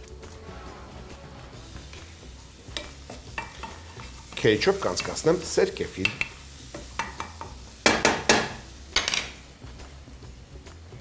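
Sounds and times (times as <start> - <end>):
food sizzling in oil: 0.0 - 10.9
spatula knocking on frying pan: 2.8 - 5.3, 6.0 - 9.3.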